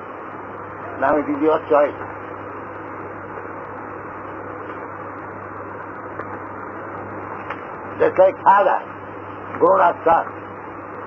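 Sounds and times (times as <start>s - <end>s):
recording hiss and hum: 0.0s - 11.0s.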